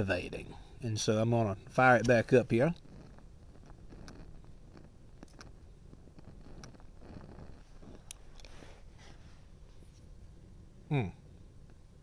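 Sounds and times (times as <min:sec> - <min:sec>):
faint clicks and pops: 0:02.0 - 0:08.6
puffing on a tobacco pipe: 0:02.7 - 0:10.2.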